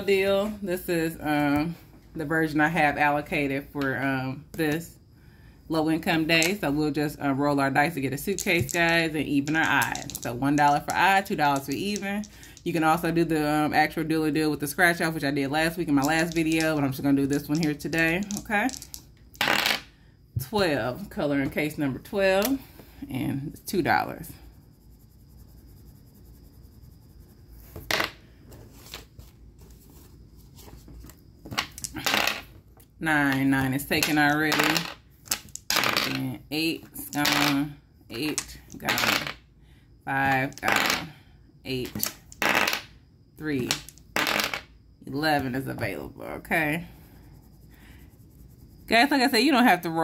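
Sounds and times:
dice clattering on tabletop: 0:08.3 - 0:12.6, 0:16.0 - 0:19.9, 0:27.8 - 0:28.2, 0:31.5 - 0:32.5, 0:33.9 - 0:36.2, 0:37.0 - 0:37.7, 0:38.3 - 0:39.4, 0:40.2 - 0:41.1, 0:41.8 - 0:42.9, 0:43.6 - 0:44.7
soft scratching on paper: 0:24.0 - 0:27.9, 0:28.5 - 0:31.2, 0:46.6 - 0:49.4.

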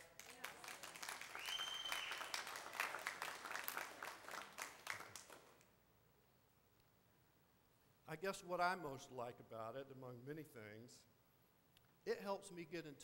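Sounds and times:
congregation applauding: 0:00.0 - 0:05.7.

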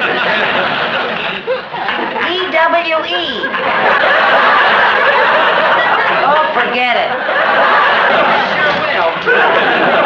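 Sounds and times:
studio audience laughing: 0:00.0 - 0:10.0.

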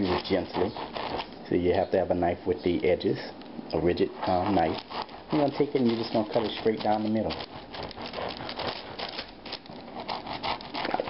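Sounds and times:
knife sawing through bread crust: 0:00.0 - 0:01.4, 0:04.0 - 0:11.0.

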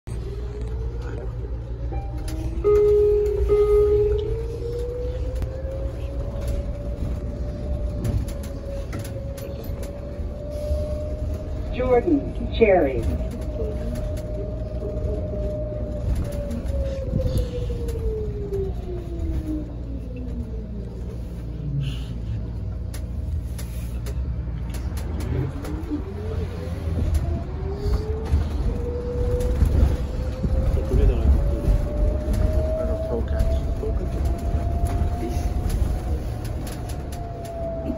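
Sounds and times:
low rumble of bus ride: 0:00.1 - 0:37.9.

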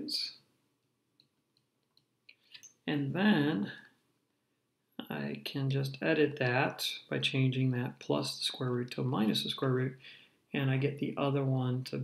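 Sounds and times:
man speaking: 0:00.0 - 0:00.4, 0:02.8 - 0:04.0, 0:05.0 - 0:12.0.

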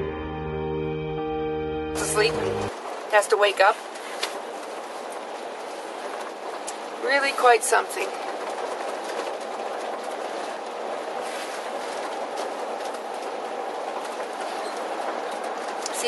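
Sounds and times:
road noise inside moving vehicle: 0:02.0 - 0:16.0.

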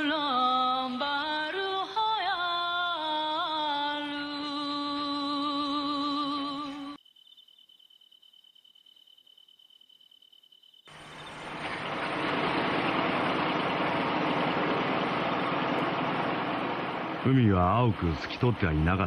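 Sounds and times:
low engine hum: 0:10.9 - 0:19.0
water rushing: 0:10.9 - 0:19.0.

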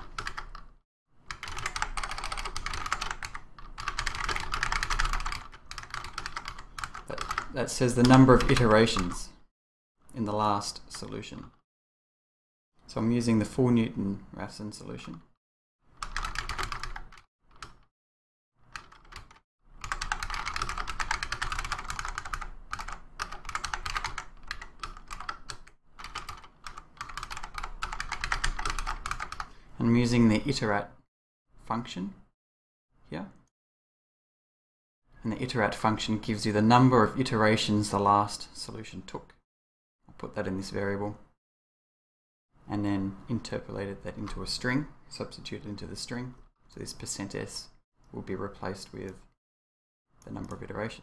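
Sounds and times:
computer keyboard typing: 0:00.0 - 0:00.7, 0:01.3 - 0:09.3, 0:16.0 - 0:17.9, 0:18.7 - 0:29.5.

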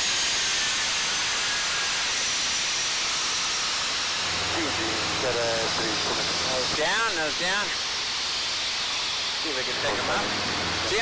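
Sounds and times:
faint high whine: 0:04.1 - 0:11.0
low hum: 0:04.2 - 0:06.8
aircraft cockpit rushing noise: 0:04.3 - 0:07.5.

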